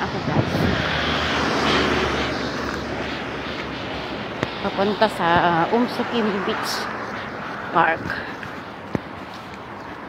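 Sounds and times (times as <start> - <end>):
engine roar passing by: 0.0 - 8.8.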